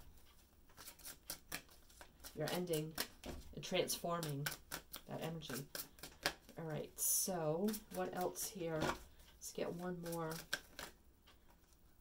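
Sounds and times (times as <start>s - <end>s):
cards snapping: 0.7s - 3.4s, 4.2s - 6.6s, 10.0s - 11.0s.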